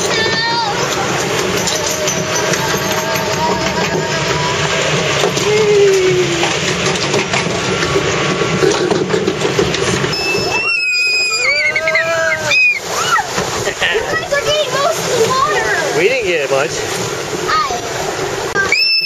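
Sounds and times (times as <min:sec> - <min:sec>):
flume boat rushing water: 0:00.0 - 0:19.0
riders screaming: 0:10.2 - 0:13.6.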